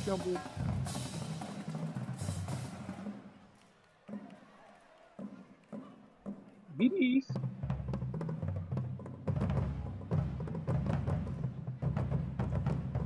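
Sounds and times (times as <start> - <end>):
marching drumline playing: 0.0 - 13.0.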